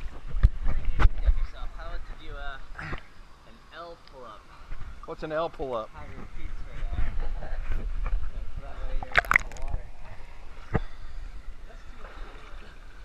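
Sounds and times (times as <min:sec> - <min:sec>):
pool water sloshing and splashing: 0:09.0 - 0:09.7, 0:11.7 - 0:13.0.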